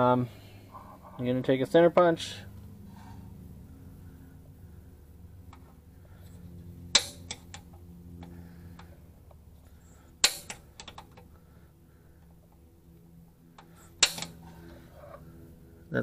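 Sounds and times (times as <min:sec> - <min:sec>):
center punch clicking on steel: 0:14.0 - 0:14.4.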